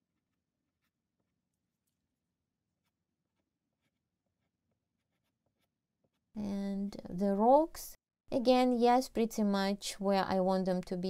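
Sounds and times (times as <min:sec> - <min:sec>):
pastel scratching on paper: 0:00.0 - 0:06.3.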